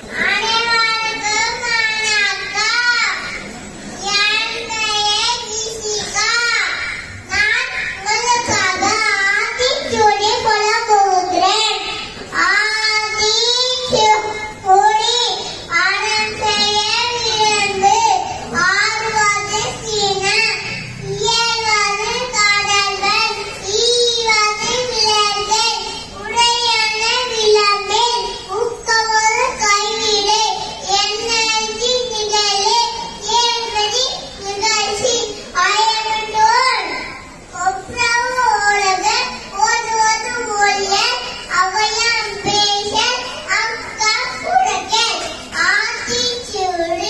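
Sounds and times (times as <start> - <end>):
child chanting in sing-song tune: 0.0 - 47.0.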